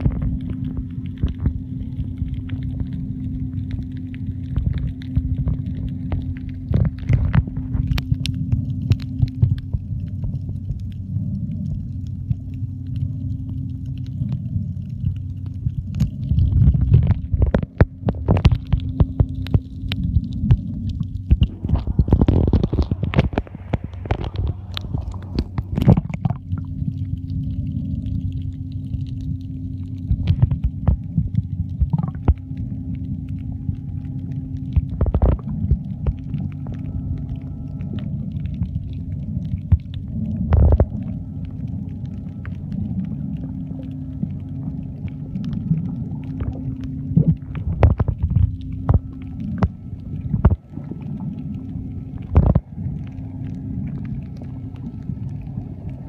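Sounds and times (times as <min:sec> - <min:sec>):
sharp knocks and crackles: 0:00.0 - 0:11.0, 0:11.6 - 0:27.5, 0:28.8 - 0:34.0, 0:34.6 - 0:51.4, 0:52.1 - 0:54.9
muffled underwater rumble: 0:00.0 - 0:56.0.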